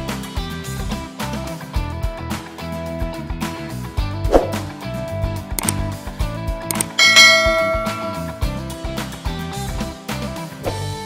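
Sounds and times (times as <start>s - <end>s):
bell-like ding: 6.7s - 8.6s
background music with steady beat: 6.7s - 8.9s.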